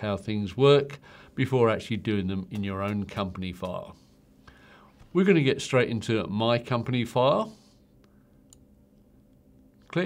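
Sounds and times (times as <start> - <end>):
faint steady hum: 0.0 - 10.0
computer mouse click: 8.0 - 8.7.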